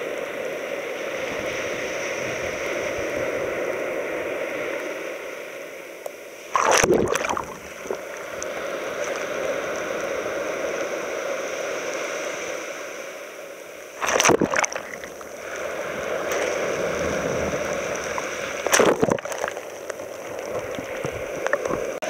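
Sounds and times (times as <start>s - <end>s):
small waves washing on sand: 0.0s - 22.0s.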